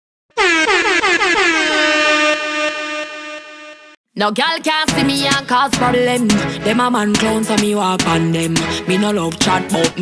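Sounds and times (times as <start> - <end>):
air horn sound effect stabs: 0.3 - 4.0.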